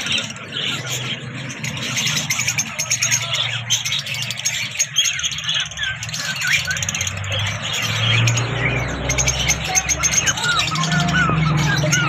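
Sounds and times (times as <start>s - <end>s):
lovebirds chirping: 0.0s - 12.0s.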